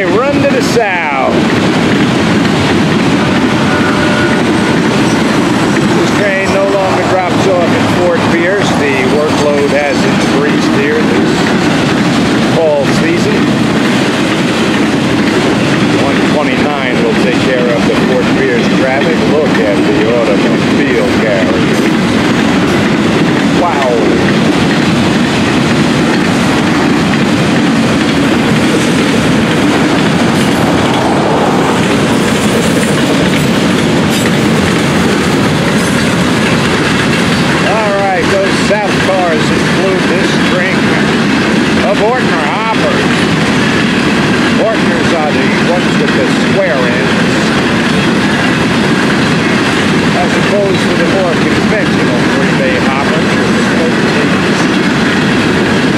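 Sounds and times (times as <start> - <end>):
freight train wheels clattering on rails: 0.0 - 55.9.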